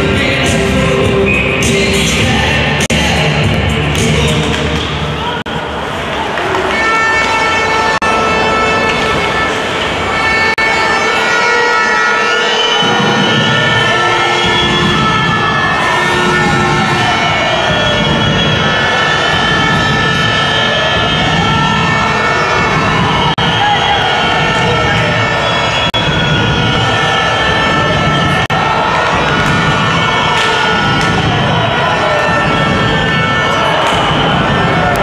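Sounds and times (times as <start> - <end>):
crowd noise: 0.0 - 35.0
siren wailing: 6.7 - 35.0.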